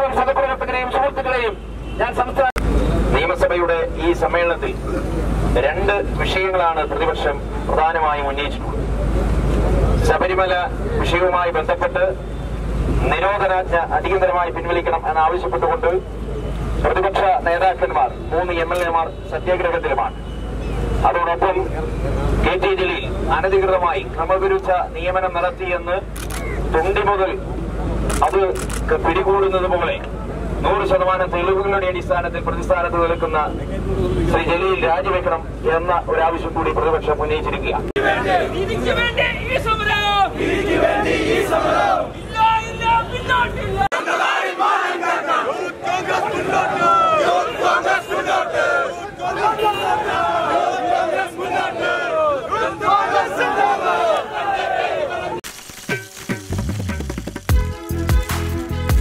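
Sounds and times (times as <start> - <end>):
man speaking into microphone: 0.0 - 8.7, 9.9 - 12.2, 13.0 - 16.1, 16.8 - 20.2, 21.0 - 27.5, 28.1 - 40.4
crowd shouting slogans: 38.0 - 39.0, 40.0 - 55.4.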